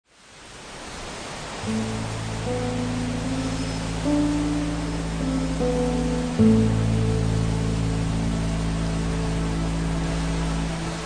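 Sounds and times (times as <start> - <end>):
steady rain hiss: 0.0 - 11.0
low sustained music notes: 1.6 - 11.0.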